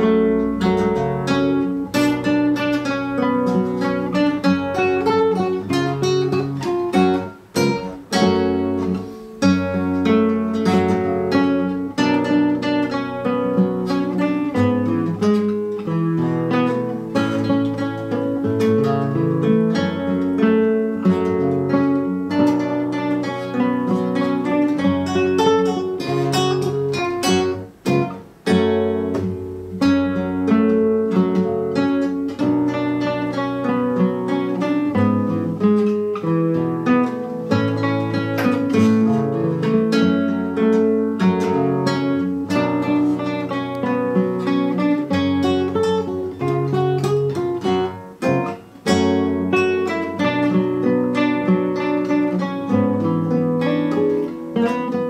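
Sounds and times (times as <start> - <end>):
classical guitar fingerstyle: 0.0 - 55.0.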